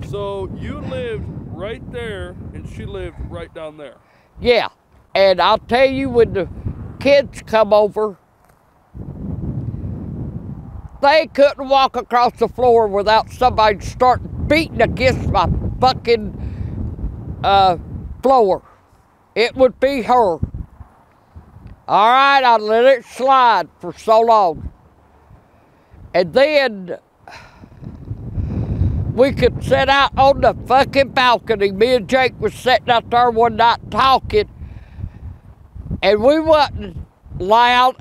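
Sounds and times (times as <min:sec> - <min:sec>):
wind buffeting microphone: 0:00.0 - 0:26.6, 0:27.2 - 0:38.0.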